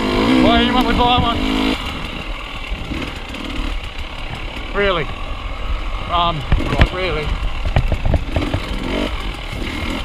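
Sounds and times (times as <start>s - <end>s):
dirt bike engine running: 0.0s - 10.0s
clattering knocks from bike: 7.6s - 8.7s.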